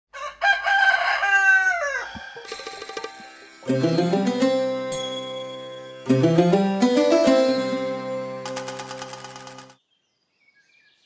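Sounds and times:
rooster crowing: 0:00.1 - 0:02.2.

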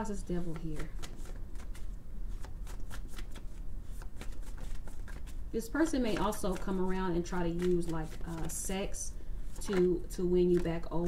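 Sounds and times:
cards being shuffled: 0:00.2 - 0:11.0.

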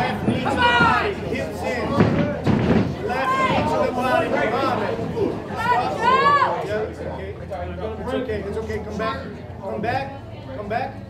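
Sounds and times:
people shouting: 0:00.0 - 0:01.2, 0:03.0 - 0:06.6.

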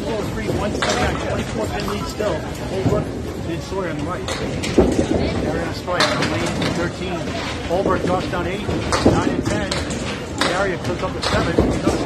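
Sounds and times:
bowling balls rolling on wooden lanes: 0:00.0 - 0:12.0
bowling pins clattering: 0:00.0 - 0:12.0
people talking: 0:00.0 - 0:12.0.

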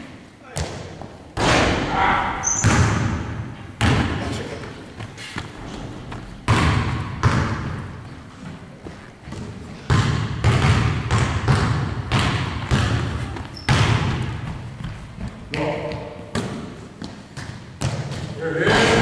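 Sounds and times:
basketballs thudding on hardwood floor: 0:00.5 - 0:04.4, 0:05.0 - 0:18.3.

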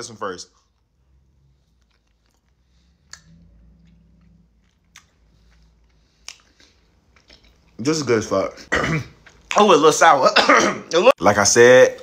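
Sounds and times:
chewing gummy candy: 0:01.5 - 0:07.9
wet mouth clicks: 0:01.7 - 0:07.7.

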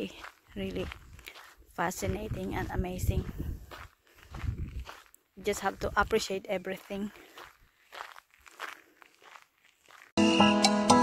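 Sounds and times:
footsteps on dirt track: 0:00.0 - 0:10.2.

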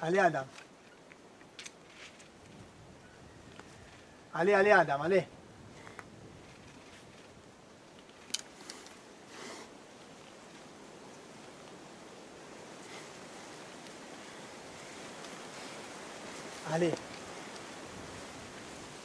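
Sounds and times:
outdoor air hiss: 0:00.0 - 0:19.0.

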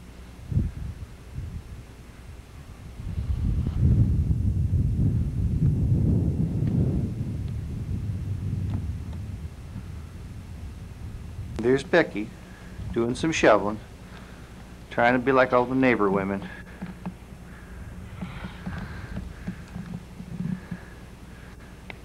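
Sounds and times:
wind buffeting microphone: 0:00.4 - 0:21.5.

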